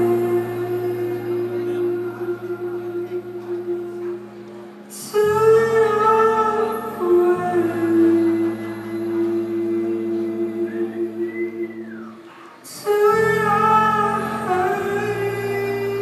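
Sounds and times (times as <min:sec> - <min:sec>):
man singing softly: 0:00.0 - 0:04.3, 0:04.9 - 0:16.0
sustained bass notes: 0:00.0 - 0:12.0
live band playing chords: 0:00.0 - 0:16.0.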